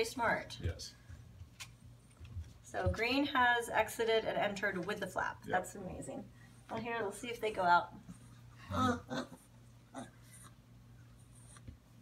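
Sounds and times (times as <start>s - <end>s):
faint puppy sounds: 8.2s - 11.7s.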